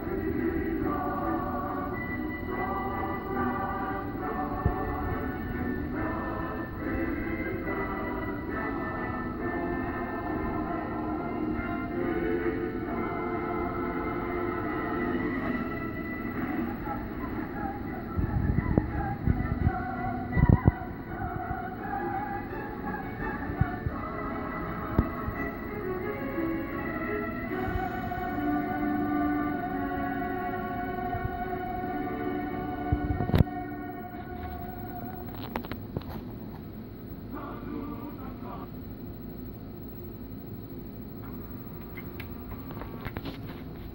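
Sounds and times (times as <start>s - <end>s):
film score music: 0.0s - 35.3s.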